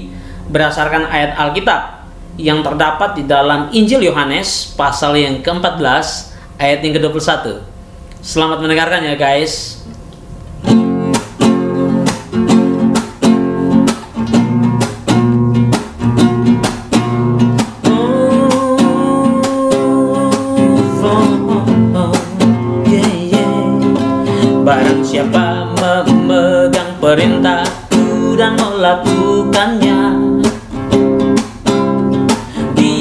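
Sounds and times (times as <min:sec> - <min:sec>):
classical guitar strumming: 0:10.4 - 0:33.0
person humming: 0:17.9 - 0:30.4.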